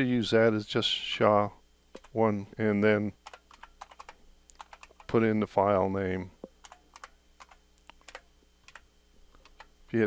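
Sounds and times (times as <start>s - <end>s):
computer keyboard keystrokes: 3.2s - 5.2s, 6.6s - 8.8s, 9.4s - 9.7s
person speaking: 4.6s - 6.4s.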